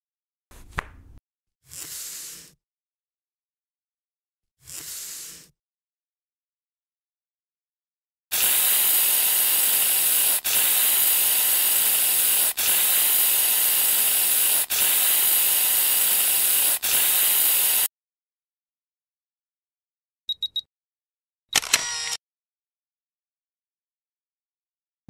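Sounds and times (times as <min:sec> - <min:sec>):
mist sprayer hissing: 0:08.3 - 0:17.9.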